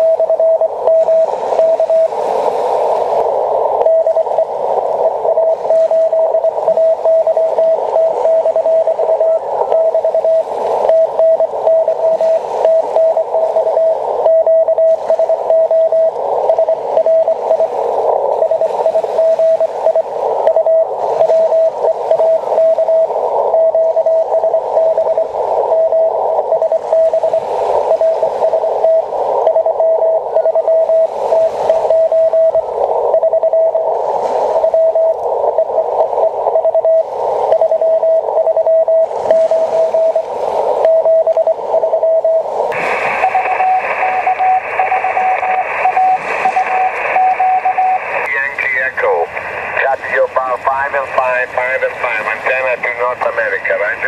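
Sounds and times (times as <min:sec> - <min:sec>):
morse code tone: 0:00.0 - 0:02.1, 0:03.8 - 0:33.9, 0:34.6 - 0:54.0
broken radio tone: 0:00.0 - 0:54.0
radio band hiss: 0:00.0 - 0:54.0.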